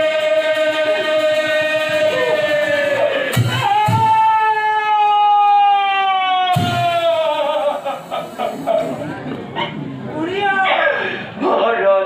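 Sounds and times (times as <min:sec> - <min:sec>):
man singing a long note: 0:00.0 - 0:04.1.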